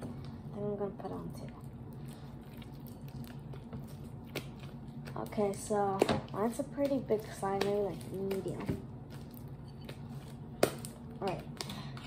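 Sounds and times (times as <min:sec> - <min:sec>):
slime squishing: 0:01.0 - 0:12.0.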